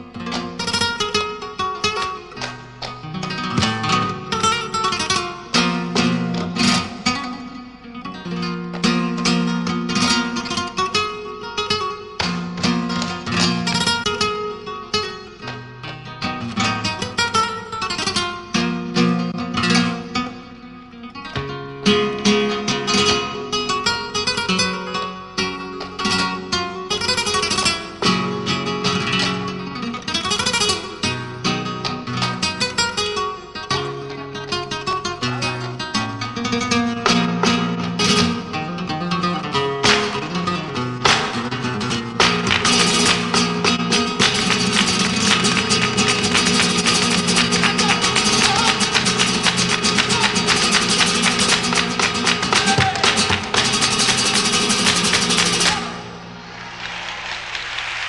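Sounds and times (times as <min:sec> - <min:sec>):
flamenco guitar playing: 0:00.0 - 0:57.4.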